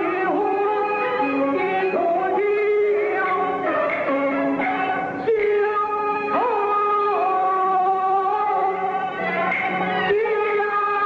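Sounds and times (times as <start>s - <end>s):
opera band accompaniment: 0.0s - 11.0s.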